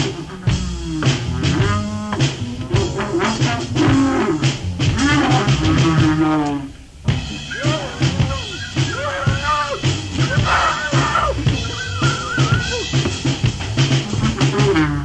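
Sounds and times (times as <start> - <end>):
bass line: 0.0 - 15.0
drum-kit beat: 0.0 - 15.0
sliding lead melody: 0.0 - 15.0.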